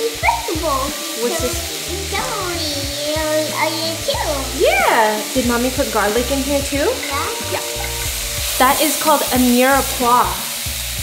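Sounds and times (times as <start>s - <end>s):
background music: 0.0s - 11.0s
vegetables sizzling in oil: 0.0s - 11.0s.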